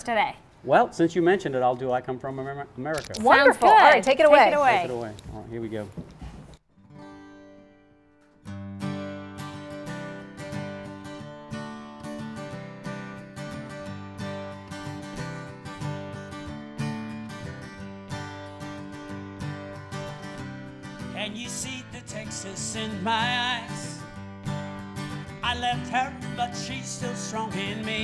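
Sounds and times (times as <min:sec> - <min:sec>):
acoustic guitar strumming: 0:06.7 - 0:28.0.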